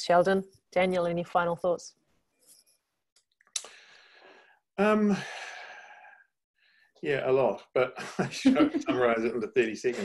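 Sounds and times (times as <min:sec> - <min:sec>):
man sighing: 0:04.8 - 0:06.1.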